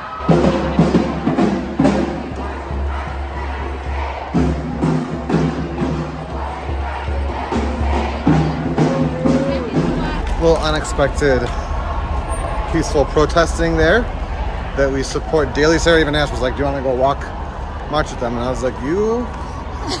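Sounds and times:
crowd chanting in unison: 0.0s - 19.7s.

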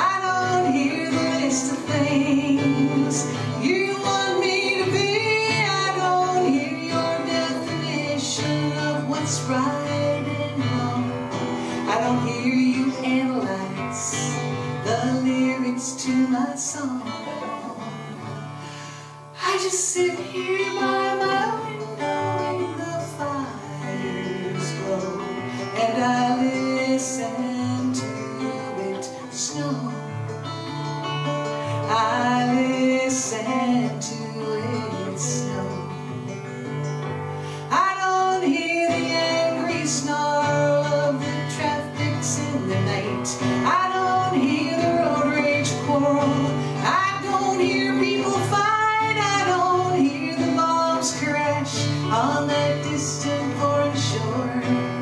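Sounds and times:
woman singing: 0.0s - 36.6s, 37.6s - 55.0s
acoustic guitar: 0.0s - 55.0s.

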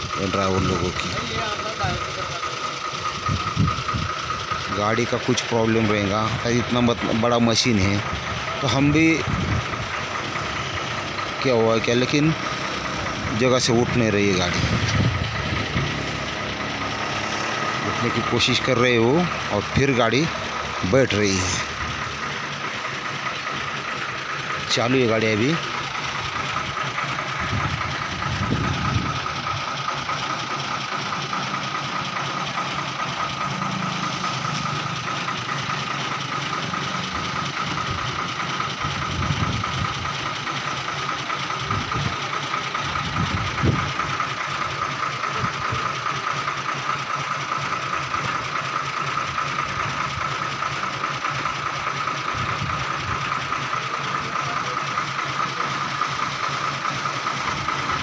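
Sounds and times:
diesel truck engine idling: 0.0s - 58.0s.

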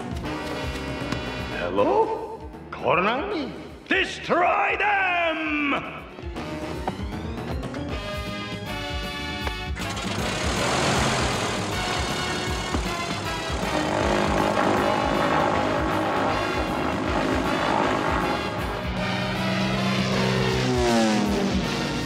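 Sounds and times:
background music: 0.0s - 22.0s
propeller engine running: 6.2s - 22.0s.

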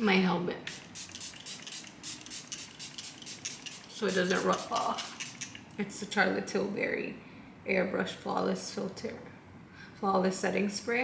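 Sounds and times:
mist spray bottle hissing: 0.7s - 5.6s.

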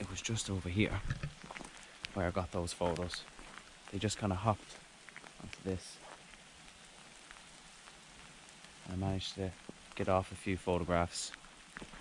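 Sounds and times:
light rain hiss: 0.0s - 12.0s.

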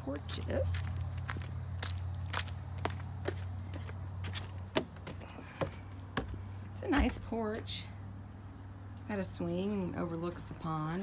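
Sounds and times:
high insect drone: 0.0s - 11.0s
footsteps on mulch and leaves: 0.2s - 7.8s.

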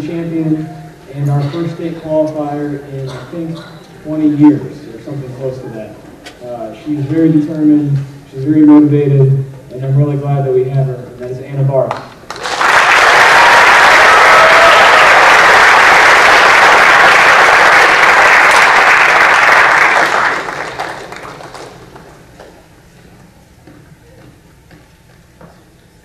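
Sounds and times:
audience applauding: 12.3s - 22.2s.

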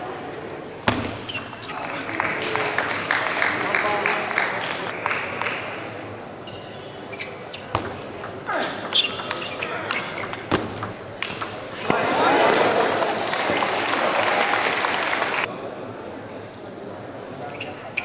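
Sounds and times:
spectators chattering: 0.0s - 18.0s
table tennis ball clicking: 7.8s - 11.6s.

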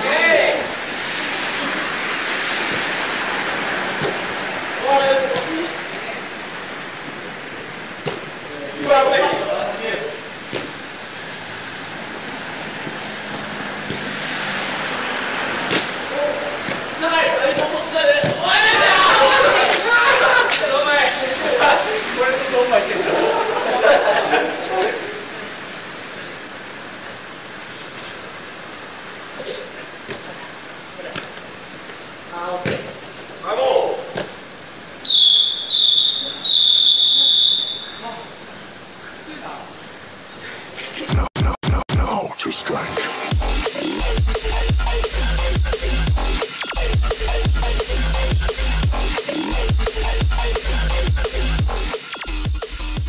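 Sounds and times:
steady hiss: 0.0s - 18.3s, 19.8s - 41.2s, 42.2s - 53.0s
players shouting: 16.0s - 25.0s
ball kicked: 17.5s - 18.5s, 32.6s - 32.9s
referee's whistle blasts: 35.0s - 38.1s.

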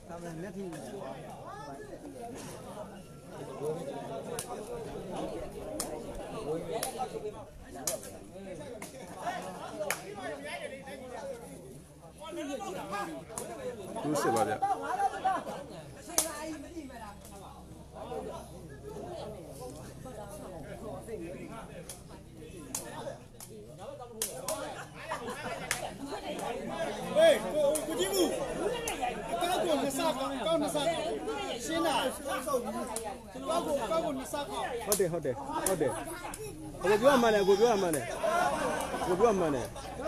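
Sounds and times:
people chattering: 0.0s - 40.0s
people talking over one another: 0.0s - 40.0s.

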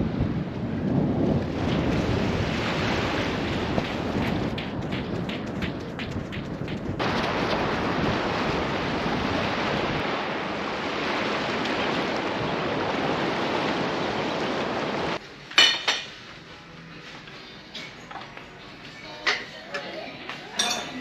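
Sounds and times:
sea surf rushing: 0.0s - 15.2s
wind buffeting microphone: 0.0s - 15.2s
bare feet running on sand: 1.5s - 9.5s.

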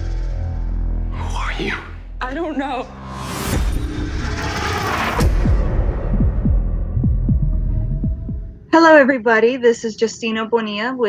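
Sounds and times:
sharp hit: 2.8s - 6.7s
heartbeat-like thuds: 5.2s - 8.7s.

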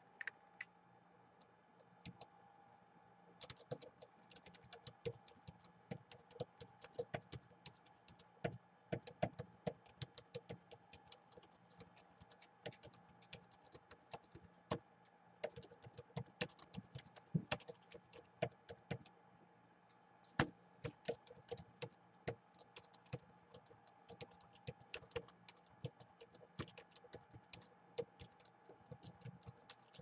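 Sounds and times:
laptop keyboard typing: 1.8s - 2.3s, 3.4s - 19.1s, 20.3s - 30.0s.

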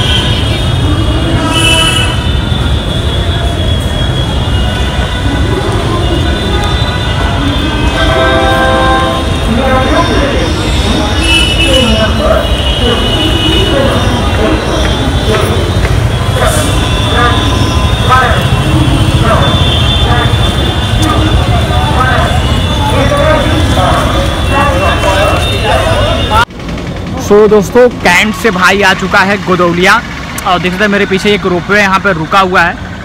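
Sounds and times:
voices of people: 0.0s - 32.8s
deep fluctuating street rumble: 0.0s - 33.0s.

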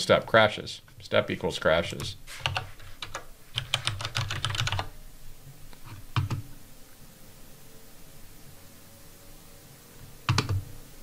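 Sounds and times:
typing on computer keyboard: 2.4s - 4.9s, 6.2s - 6.4s, 10.3s - 10.6s.

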